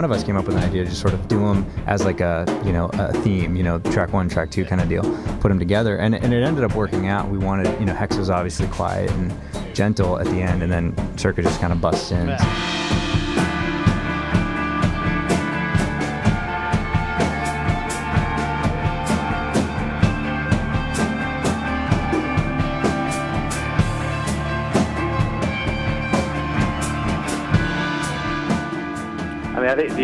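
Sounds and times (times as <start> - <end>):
drum kit pounding: 0.0 - 30.0
instrumental rock band: 0.0 - 30.0
sustained guitar chords: 12.3 - 30.0.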